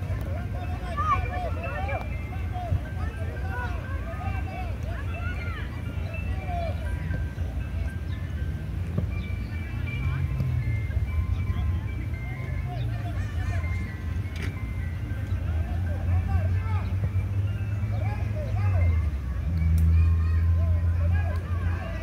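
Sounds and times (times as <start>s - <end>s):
distant children shouting: 0.0s - 22.0s
tinkling melody: 0.0s - 22.0s.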